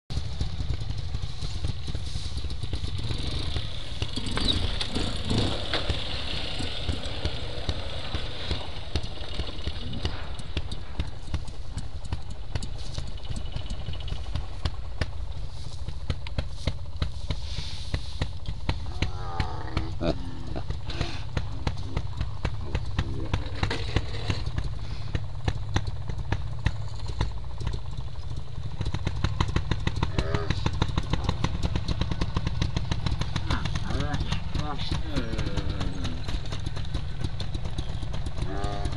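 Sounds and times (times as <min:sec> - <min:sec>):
motorcycle engines running: 0:00.0 - 0:38.9
people's voices: 0:18.8 - 0:23.9, 0:33.4 - 0:36.4.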